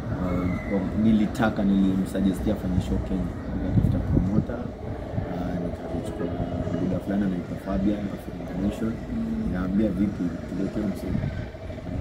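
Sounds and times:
man talking: 0:00.1 - 0:12.0
steady low rumble: 0:00.9 - 0:12.0.

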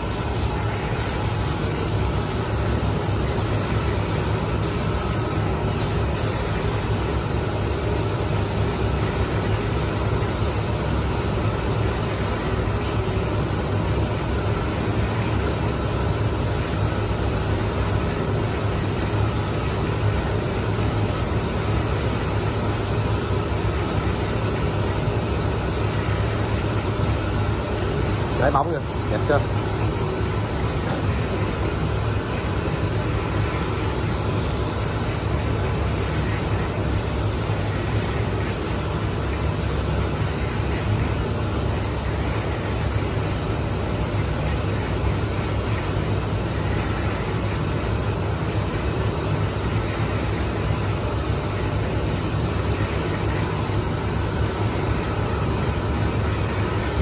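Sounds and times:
paint spray gun hissing: 0:00.0 - 0:57.0.

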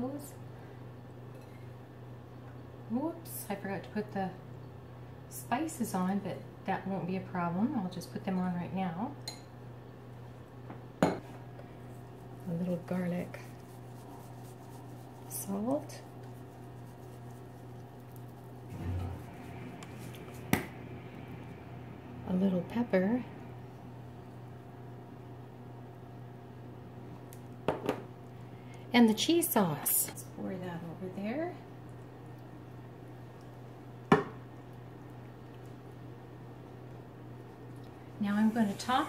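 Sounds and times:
steady low hum: 0:00.0 - 0:39.0.

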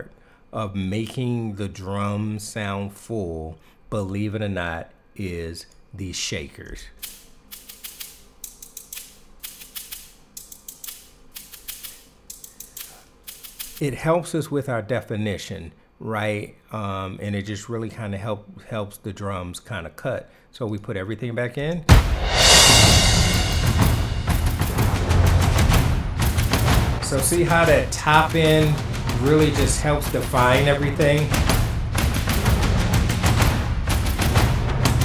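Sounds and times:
shakers shaking: 0:07.0 - 0:13.8
fast snare drum strokes: 0:21.9 - 0:35.0
loud percussion hit: 0:21.9 - 0:35.0
low toms and taiko drums: 0:21.9 - 0:35.0.

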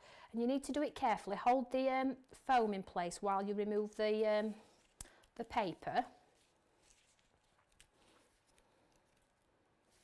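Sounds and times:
card and paper handling: 0:06.3 - 0:10.0.

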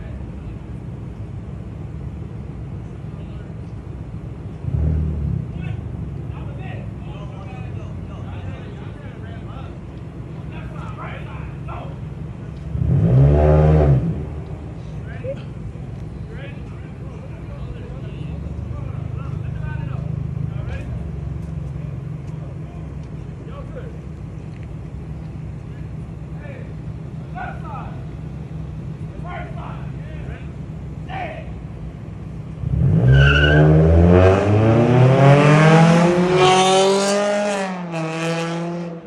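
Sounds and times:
car engines idling: 0:00.0 - 0:39.0
engine revving: 0:04.6 - 0:06.0, 0:12.6 - 0:14.8, 0:32.5 - 0:39.0.

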